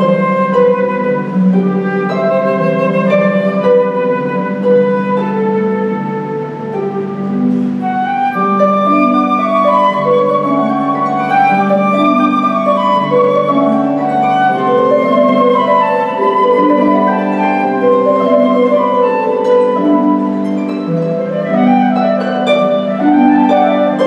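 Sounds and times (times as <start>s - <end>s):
flute melody: 0.0s - 24.0s
harp plucking: 0.0s - 24.0s.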